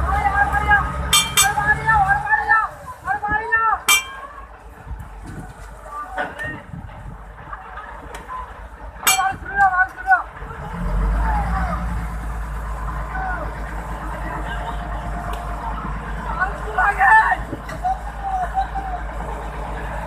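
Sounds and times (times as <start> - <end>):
boat engine drone: 0.0 - 20.0
people shouting: 16.3 - 19.2.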